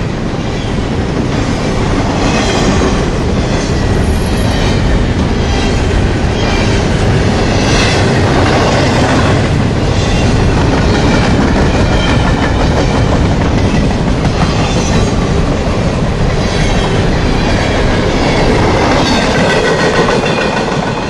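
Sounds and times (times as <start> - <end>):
freight train wheels clattering: 0.0 - 21.0.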